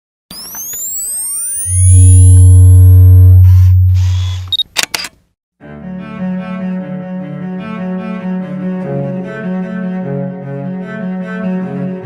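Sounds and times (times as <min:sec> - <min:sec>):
deep bass tone: 0:01.7 - 0:04.5
camera shutter click: 0:04.4 - 0:05.2
music with bowed strings: 0:05.6 - 0:12.0.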